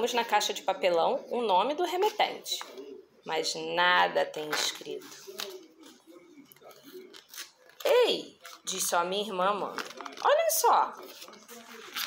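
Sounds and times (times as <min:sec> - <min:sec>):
paper pages rustling: 0:04.5 - 0:08.8, 0:09.7 - 0:12.0.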